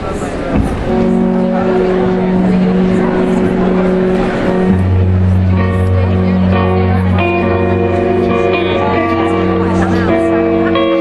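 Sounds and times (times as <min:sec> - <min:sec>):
low bass note: 0:00.6 - 0:11.0
electric guitar droning chord: 0:00.8 - 0:11.0.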